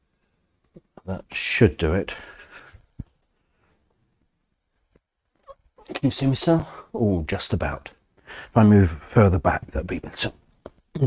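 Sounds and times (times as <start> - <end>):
man speaking: 1.0 - 2.2, 5.8 - 11.0.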